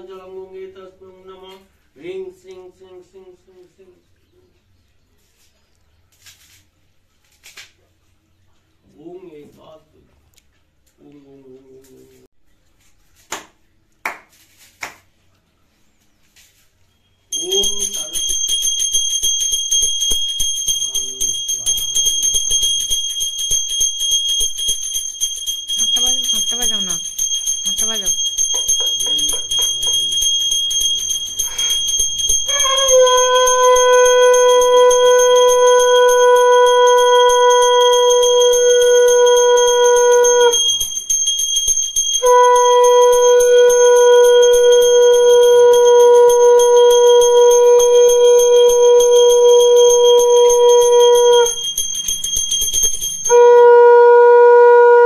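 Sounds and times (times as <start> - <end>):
hand bell ringing: 17.3 - 53.7
conch shell blasts: 29.5 - 41.0, 42.2 - 55.0.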